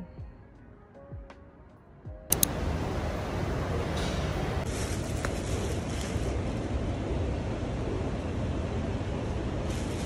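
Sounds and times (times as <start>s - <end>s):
light click: 2.3s - 2.6s
low rumbling background noise: 2.3s - 10.0s.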